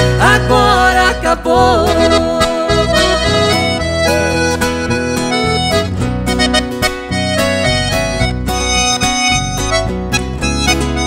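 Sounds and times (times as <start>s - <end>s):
accordion melody: 0.0s - 11.0s
bass line: 0.0s - 11.0s
strummed acoustic guitars: 0.0s - 11.0s.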